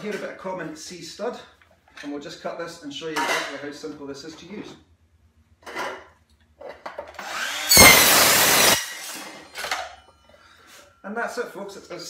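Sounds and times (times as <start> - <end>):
circular saw cutting steel: 7.2 - 9.6.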